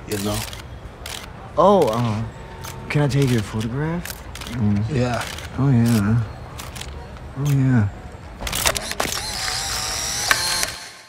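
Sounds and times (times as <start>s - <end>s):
camera shutter click: 8.5s - 11.0s
film ejection motor whirring: 8.5s - 11.0s.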